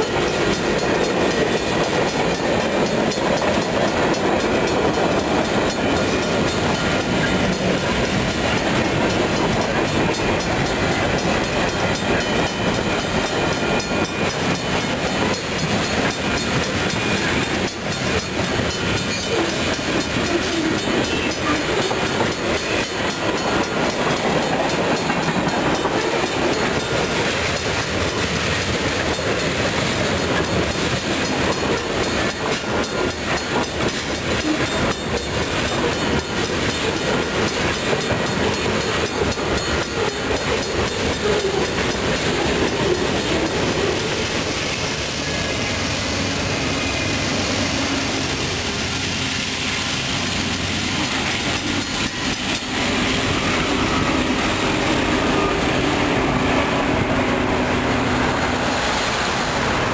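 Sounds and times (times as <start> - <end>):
train wheels clacking over rails: 0.0 - 59.9.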